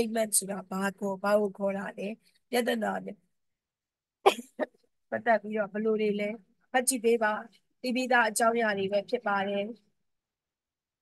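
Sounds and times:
woman coughing: 0:04.3 - 0:04.8.

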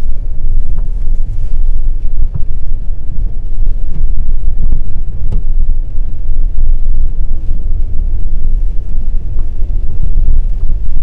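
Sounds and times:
car cabin road and engine rumble: 0:00.0 - 0:11.0.

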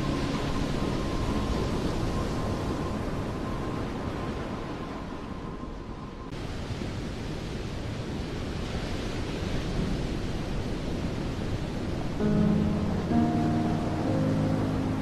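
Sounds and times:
faint held tone: 0:12.2 - 0:15.0.

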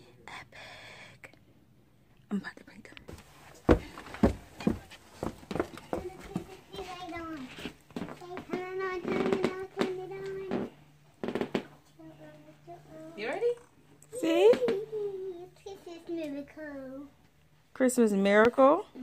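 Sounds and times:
footsteps on wooden floor: 0:03.1 - 0:11.7.

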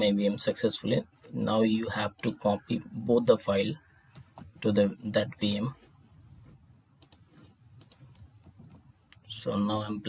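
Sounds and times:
computer keys and mouse clicks: 0:02.1 - 0:02.4, 0:04.1 - 0:04.6, 0:05.4 - 0:05.7, 0:07.0 - 0:09.3.

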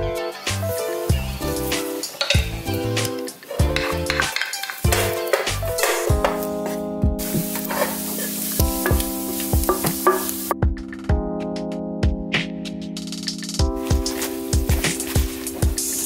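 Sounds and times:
background music with chords: 0:00.0 - 0:16.0
bacon sizzling in a frying pan: 0:00.7 - 0:06.6, 0:07.2 - 0:10.6
wooden spatula scraping a pan: 0:00.8 - 0:10.4.

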